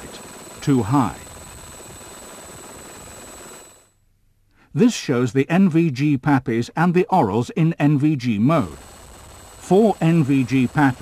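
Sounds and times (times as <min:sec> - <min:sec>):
helicopter drone from on board: 0:00.0 - 0:03.9, 0:08.4 - 0:11.0.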